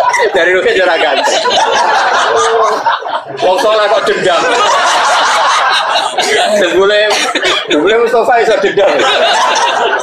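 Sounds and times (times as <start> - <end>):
man talking: 0.0 - 1.6, 2.2 - 4.8, 6.1 - 9.3
chuckling: 1.0 - 7.9.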